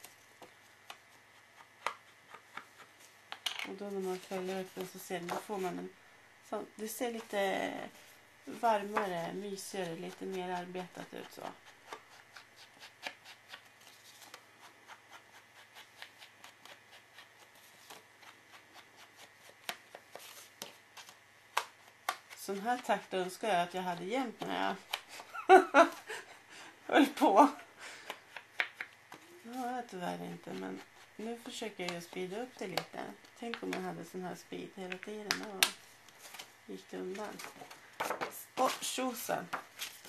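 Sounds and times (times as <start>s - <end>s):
paper rustling: 3.9s - 5.7s, 35.3s - 40.0s.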